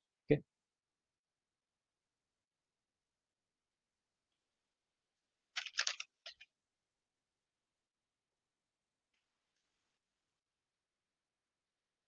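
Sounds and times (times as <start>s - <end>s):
paper rustling: 5.6s - 6.4s.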